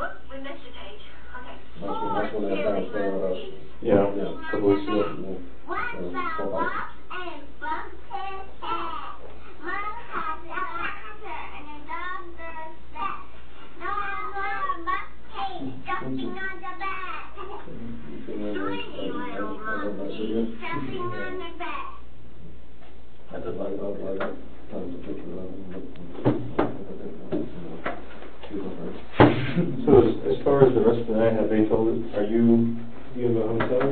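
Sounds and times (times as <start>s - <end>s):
muffled voices: 0.0s - 22.6s, 23.2s - 33.9s
young child singing: 1.8s - 3.4s, 4.2s - 17.7s, 18.4s - 22.0s
sharp knocks: 26.1s - 28.1s.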